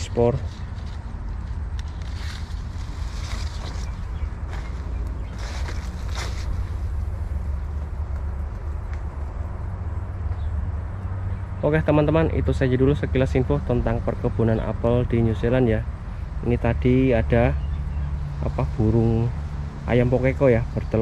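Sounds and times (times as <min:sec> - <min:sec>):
leaves and branches rustling: 0:00.0 - 0:09.5
low outdoor rumble: 0:00.0 - 0:21.0.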